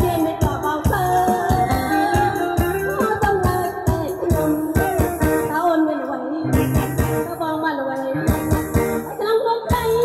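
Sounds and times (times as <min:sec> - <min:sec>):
woman singing into microphone: 0:00.0 - 0:10.0
amplified dance music: 0:06.5 - 0:07.4, 0:08.2 - 0:10.0.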